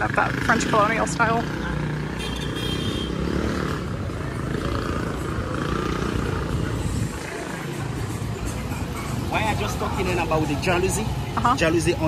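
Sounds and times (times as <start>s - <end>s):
street rumble: 0.0s - 12.0s.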